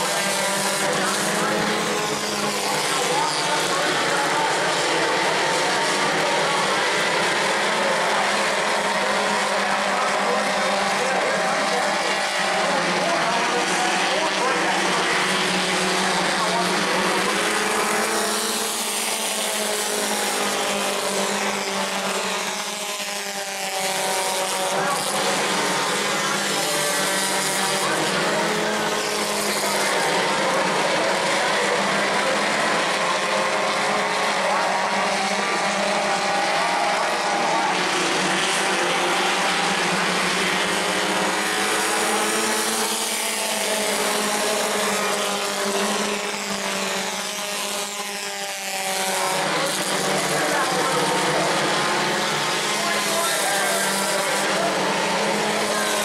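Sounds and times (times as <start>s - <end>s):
race car engines revving past: 0.0s - 56.0s.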